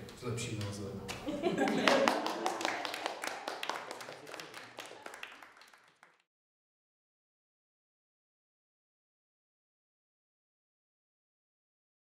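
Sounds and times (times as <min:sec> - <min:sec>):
small group applauding: 0:00.6 - 0:06.3.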